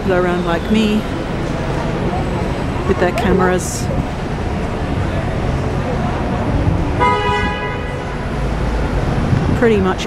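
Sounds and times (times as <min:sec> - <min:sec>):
street traffic noise: 0:00.0 - 0:10.0
vehicle horn: 0:07.0 - 0:08.2.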